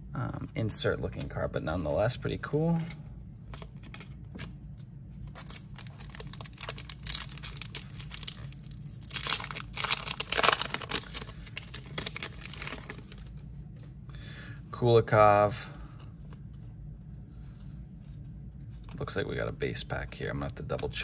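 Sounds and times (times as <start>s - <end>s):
wrapper tearing and crinkling: 5.3s - 13.4s.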